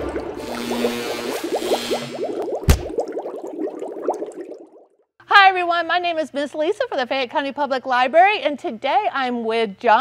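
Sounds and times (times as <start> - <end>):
bubbling chirps: 0.0 - 5.0.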